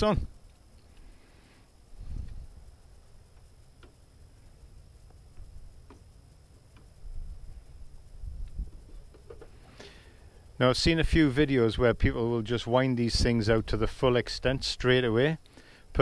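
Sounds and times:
wind rumble on microphone: 0:02.0 - 0:02.6, 0:07.0 - 0:09.0.

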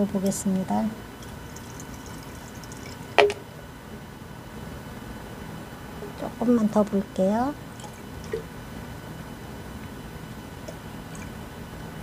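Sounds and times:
liquid trickling through funnel: 0:01.1 - 0:03.4, 0:07.7 - 0:08.5, 0:10.6 - 0:11.4.

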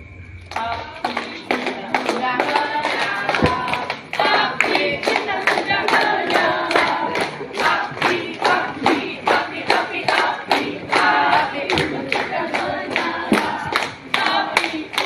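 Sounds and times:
group of people singing: 0:00.5 - 0:15.0
rhythmic hand-clapping: 0:00.5 - 0:15.0.

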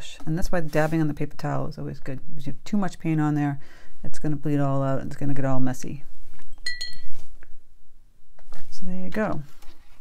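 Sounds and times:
paintbrush clinking on container: 0:06.6 - 0:07.2.

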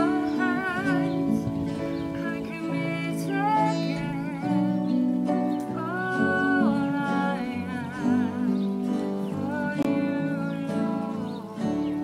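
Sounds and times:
acoustic guitar: 0:00.0 - 0:12.0
voices singing worship song: 0:00.0 - 0:12.0.

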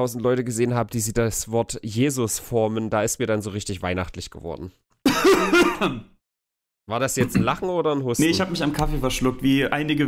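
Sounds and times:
man coughing and sputtering: 0:05.0 - 0:06.2.

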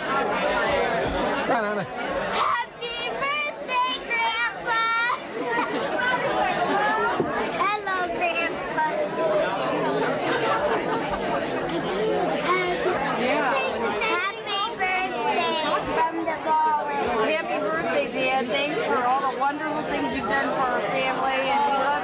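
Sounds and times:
children's voices: 0:00.0 - 0:22.0
indistinct chatter of voices: 0:00.0 - 0:22.0.

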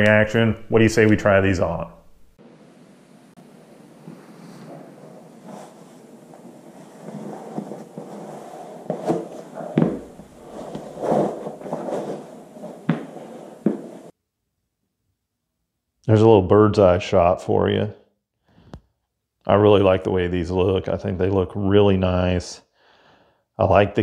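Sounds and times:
leather and denim rustling: 0:04.2 - 0:14.1
boots thumping on carpet: 0:08.9 - 0:14.0.

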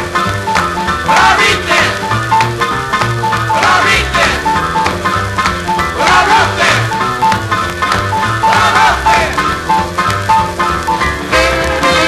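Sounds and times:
instrumental boogie combo record: 0:00.0 - 0:12.0.

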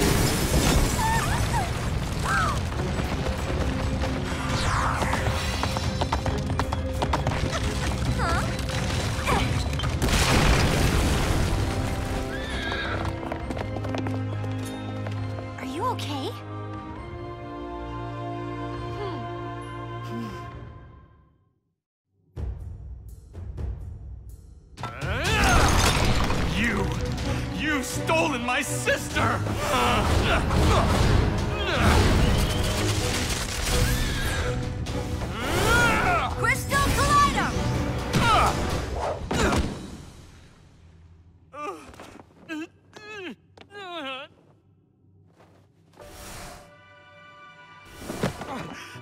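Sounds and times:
dramatic cartoon music: 0:00.9 - 0:21.4, 0:22.3 - 0:39.9
creature whinny: 0:33.8 - 0:34.6.

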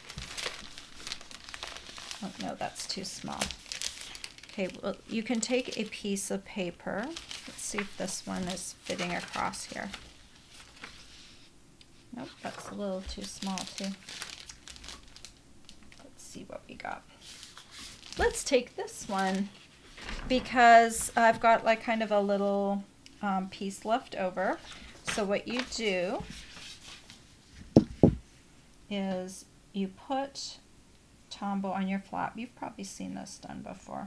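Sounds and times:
paper scraps rustling: 0:00.0 - 0:05.9, 0:06.9 - 0:11.4, 0:12.1 - 0:16.1, 0:17.2 - 0:21.8, 0:24.6 - 0:27.7
plastic sleeve crinkling: 0:00.0 - 0:22.0, 0:24.4 - 0:28.1.

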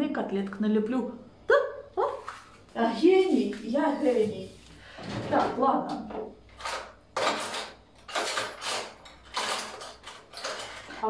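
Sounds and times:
cutlery rattling in drawer: 0:06.6 - 0:11.0.

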